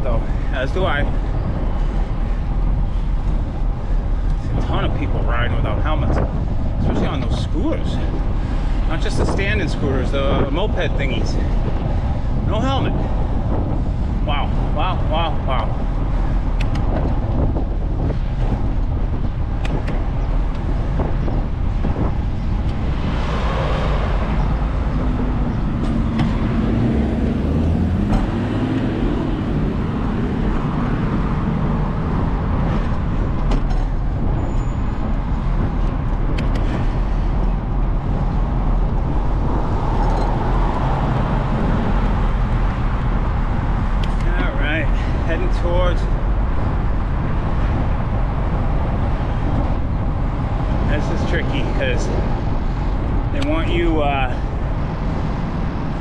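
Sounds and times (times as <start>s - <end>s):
car engines passing: 0.0s - 56.0s
wind and road noise: 0.0s - 56.0s.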